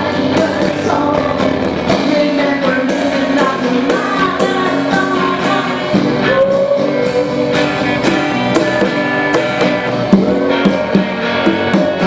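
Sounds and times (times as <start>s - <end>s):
bass guitar: 0.0s - 12.0s
guitars playing: 0.0s - 12.0s
percussion: 0.0s - 12.0s.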